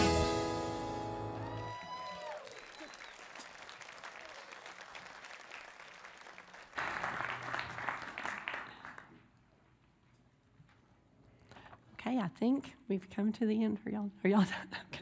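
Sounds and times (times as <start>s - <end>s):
congregation applauding: 1.2s - 9.2s.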